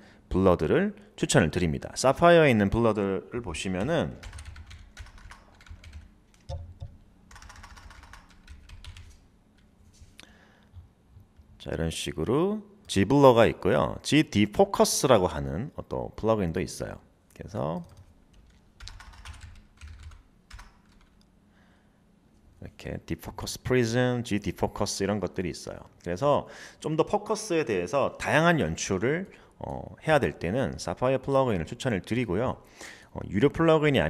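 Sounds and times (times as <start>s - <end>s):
typing on computer keyboard: 3.8s - 9.2s, 17.8s - 21.2s.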